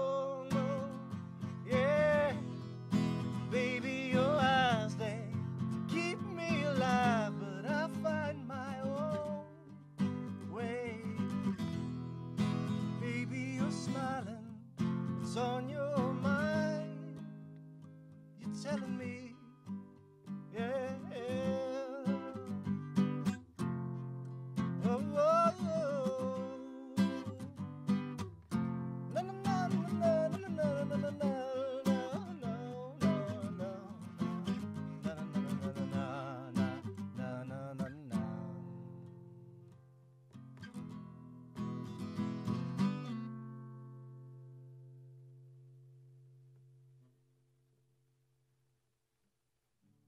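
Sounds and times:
man singing: 0.0s - 9.7s, 10.4s - 11.5s, 12.9s - 14.6s, 15.2s - 17.2s, 18.4s - 19.6s, 20.5s - 22.7s, 24.8s - 27.6s, 29.1s - 38.7s
strummed acoustic guitar: 0.0s - 47.1s.

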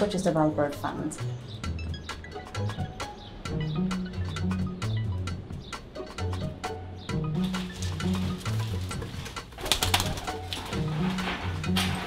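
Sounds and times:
soft background music: 0.0s - 12.0s
wing flaps and rustling: 7.4s - 12.0s
pigeon cooing: 7.7s - 11.3s.

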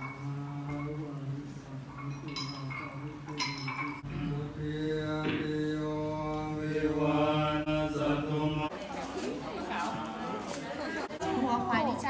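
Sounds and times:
monks chanting in a drone: 0.0s - 8.7s.

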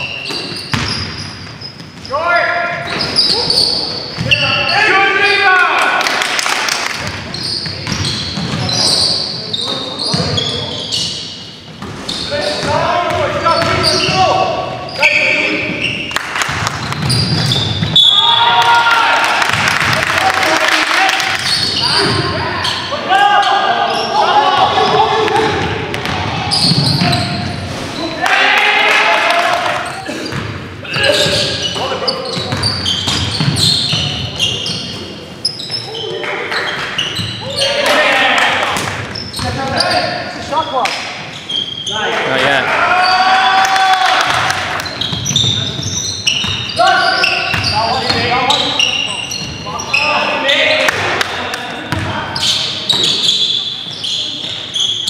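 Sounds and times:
players shouting: 2.1s - 6.2s, 18.0s - 32.4s, 37.4s - 40.2s, 41.9s - 45.8s, 46.7s - 52.4s.

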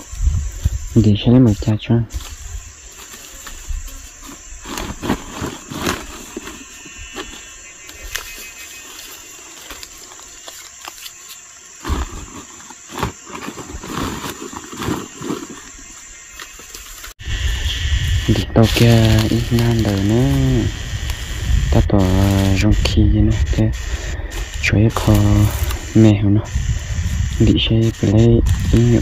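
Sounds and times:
dry leaves crackling underfoot: 0.0s - 23.1s, 24.0s - 26.2s
insects droning: 0.0s - 29.0s
bamboo stalks knocking and rustling: 2.1s - 17.2s, 18.6s - 21.2s.

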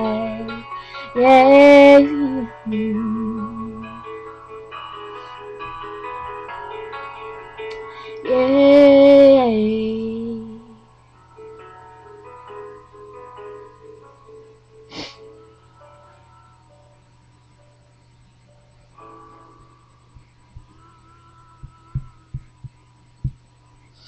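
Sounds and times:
steady low hum: 0.0s - 24.0s
dull low thumps of handling: 21.6s - 23.5s.

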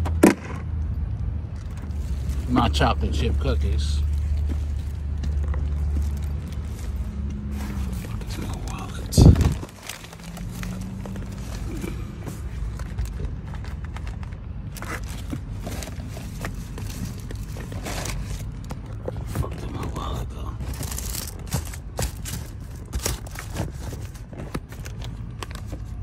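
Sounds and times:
outside hum: 0.0s - 26.0s
bags and papers rustling: 1.6s - 26.0s.

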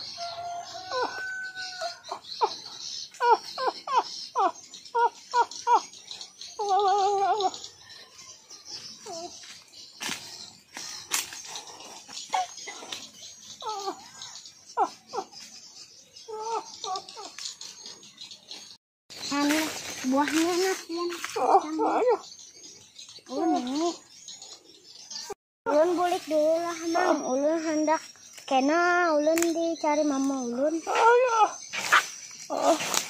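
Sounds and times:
rooster crowing: 0.0s - 2.2s.

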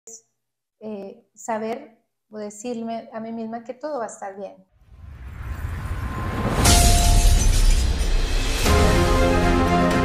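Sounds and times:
rising swell: 4.8s - 9.0s
glass-shatter crash: 5.2s - 9.1s.

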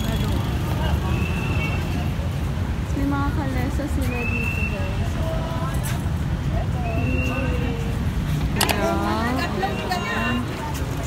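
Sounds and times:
faint voices: 0.0s - 11.0s
low street rumble: 0.0s - 11.0s.

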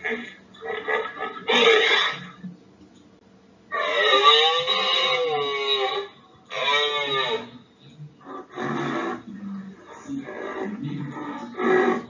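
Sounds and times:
rhinoceros rough calls: 0.0s - 2.4s, 3.7s - 7.6s, 8.2s - 12.0s
rhinoceros squealing: 0.0s - 2.4s, 3.7s - 7.6s, 8.3s - 12.0s.

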